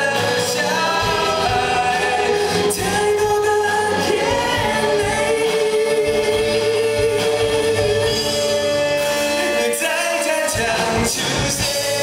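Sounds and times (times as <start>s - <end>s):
man singing into microphone: 0.0s - 8.7s, 9.3s - 12.0s
bass guitar: 0.0s - 12.0s
drums: 0.0s - 12.0s
electric guitars: 0.0s - 12.0s.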